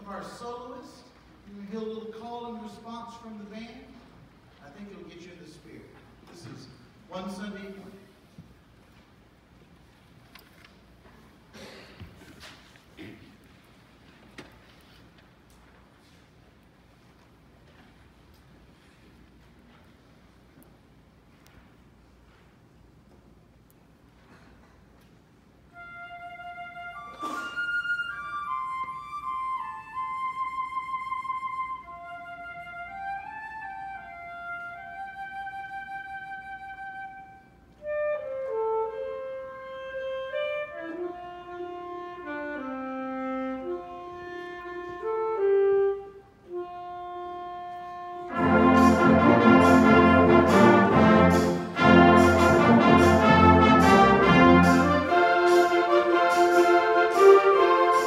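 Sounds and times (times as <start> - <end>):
soft wind instrument melody: 25.6 - 58.0
trumpets and clarinets: 25.7 - 58.0
concert band playing gospel piece: 48.3 - 58.0.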